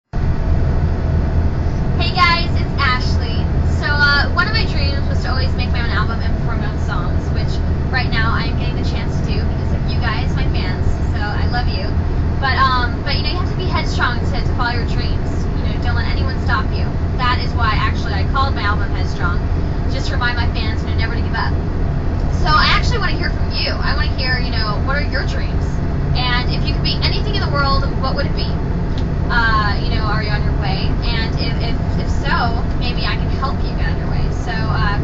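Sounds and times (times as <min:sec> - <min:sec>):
steady low rumble: 0:00.0 - 0:35.0
person talking: 0:02.0 - 0:21.5, 0:22.2 - 0:25.6, 0:26.2 - 0:28.6, 0:29.3 - 0:35.0.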